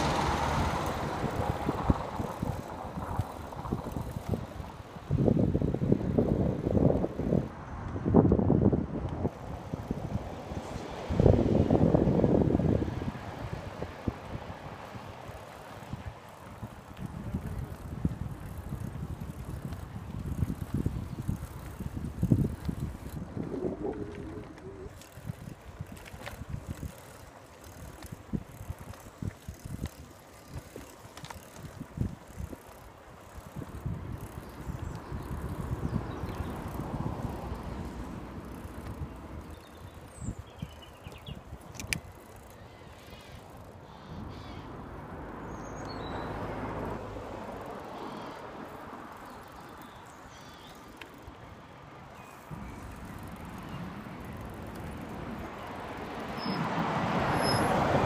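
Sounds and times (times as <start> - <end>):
wind buffeting microphone: 0.0 - 47.7
bicycle low thumps: 15.3 - 42.5.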